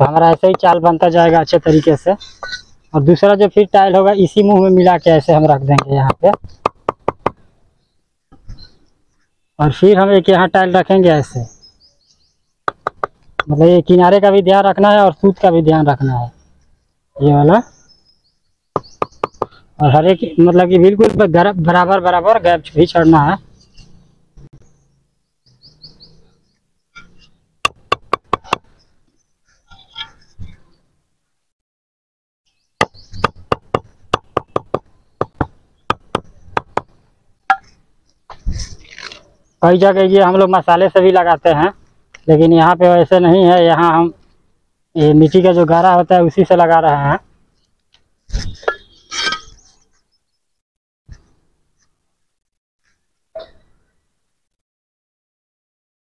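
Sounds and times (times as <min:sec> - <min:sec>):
faint bird chirps: 0:01.7 - 0:03.0, 0:28.7 - 0:30.9, 0:32.5 - 0:33.4, 0:47.4 - 0:52.0, 0:52.8 - 0:54.1
bricks and trowel clinking: 0:48.4 - 0:49.7.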